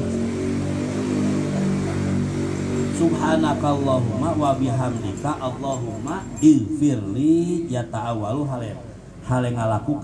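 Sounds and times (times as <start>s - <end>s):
low mechanical drone: 0.0s - 10.0s.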